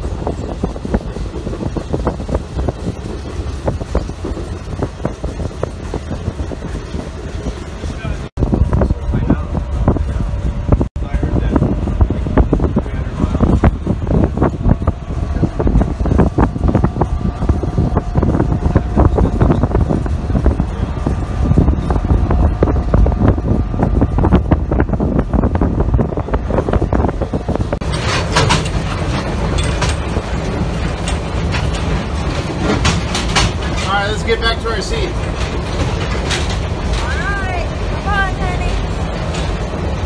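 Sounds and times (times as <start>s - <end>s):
train rumbling: 0.0s - 40.0s
wheels clicking on rails: 0.0s - 40.0s
people's voices: 36.9s - 38.8s.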